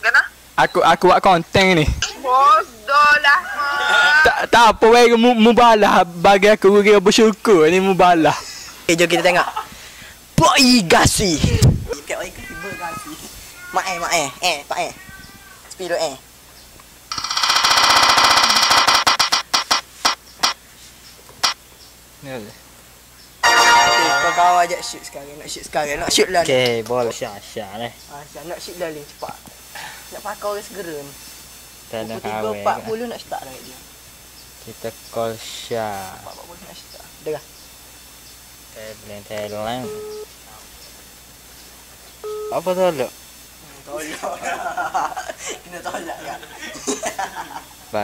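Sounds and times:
telephone ringback beep: 17.1s - 19.8s, 39.8s - 40.3s, 42.2s - 42.7s
electronic ticks from phone speaker: 17.1s - 20.6s.

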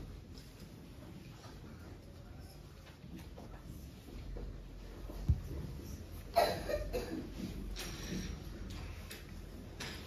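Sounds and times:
faint irregular clicks: 7.7s - 10.0s.

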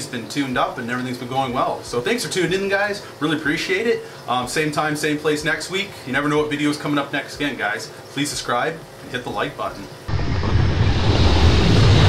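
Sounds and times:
storm wind rushing: 10.1s - 12.0s.

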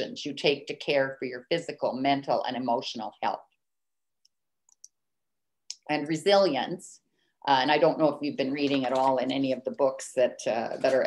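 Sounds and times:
woman's voice: 0.0s - 3.4s, 5.7s - 11.0s.

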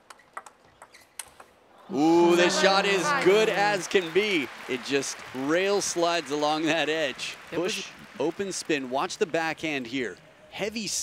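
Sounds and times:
table tennis ball clicks: 0.1s - 1.5s.

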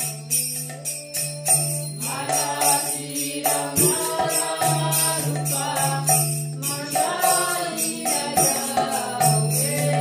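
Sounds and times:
metallic jingling percussion: 0.0s - 10.0s
voices chanting a mantra: 2.0s - 10.0s.

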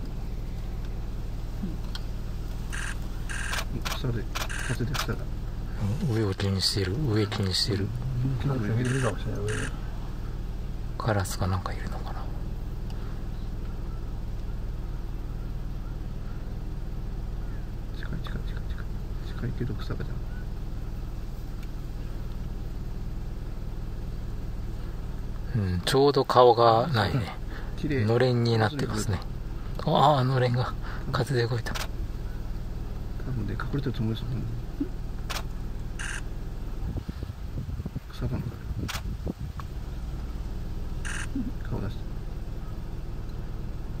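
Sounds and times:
steady low hum: 0.0s - 44.0s
vehicle engine running: 0.0s - 44.0s
camera shutter bursts: 2.7s - 5.2s, 8.8s - 9.7s, 35.3s - 36.3s, 41.0s - 41.4s.

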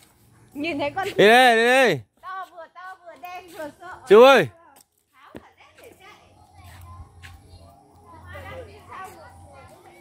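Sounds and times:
voices talking: 0.5s - 10.0s.

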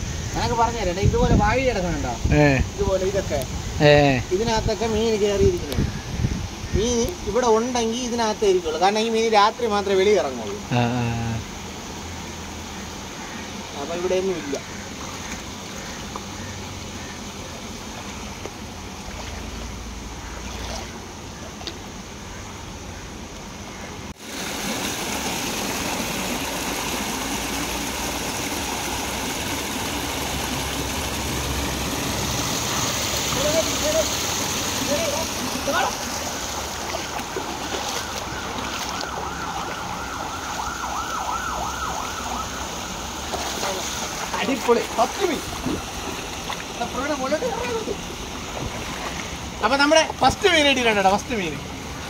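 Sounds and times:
stream water rushing over rocks: 6.6s - 22.3s, 23.3s - 52.0s.

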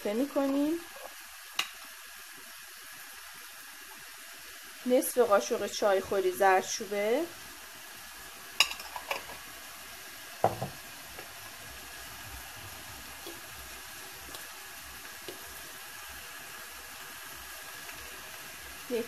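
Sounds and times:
meat frying in a pot: 0.0s - 19.0s.

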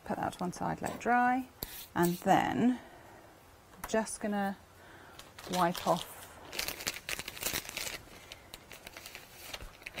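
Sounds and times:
wipe crinkling and rustling: 5.2s - 10.0s.

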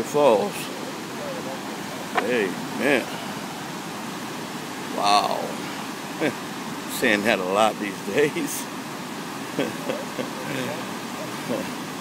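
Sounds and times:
whitewater rushing over rocks: 0.0s - 12.0s.

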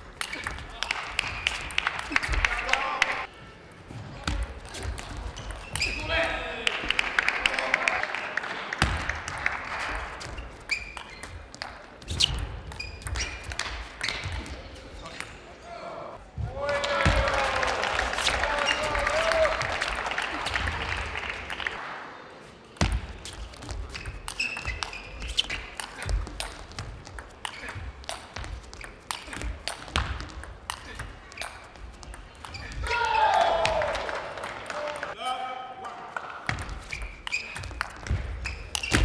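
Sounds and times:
spectators cheering: 16.5s - 21.8s, 32.8s - 35.2s.

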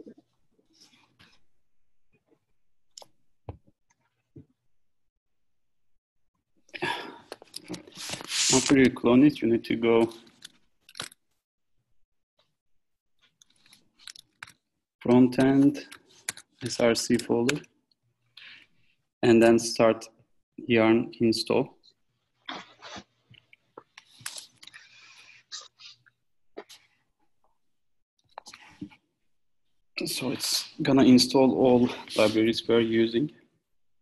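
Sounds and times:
soft whispered voice: 31.6s - 33.2s.

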